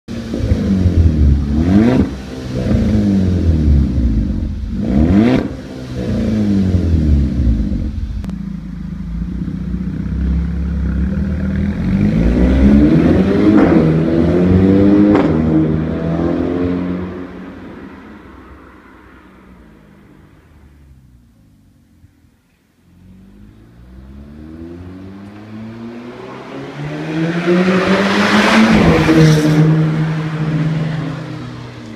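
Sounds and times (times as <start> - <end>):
car accelerating away: 0.1 - 21.1, 22.9 - 31.9
car engine revving: 0.1 - 21.2, 23.0 - 31.9.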